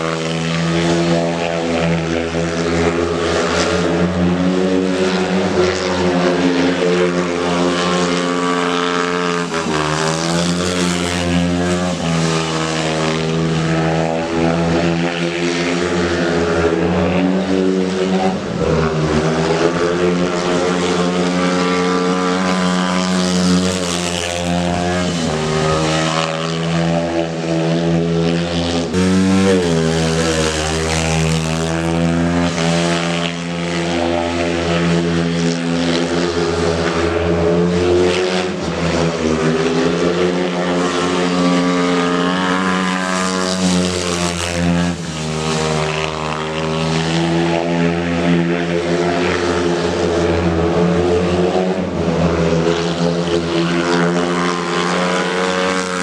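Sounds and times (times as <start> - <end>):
motorcycle engine running hard: 0.0 - 56.0.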